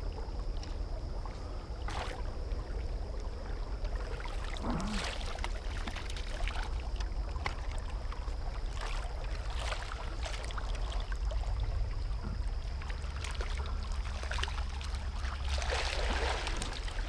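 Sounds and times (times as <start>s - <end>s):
low rumble of river current: 0.0s - 17.0s
water sloshing and splashing: 0.0s - 17.0s.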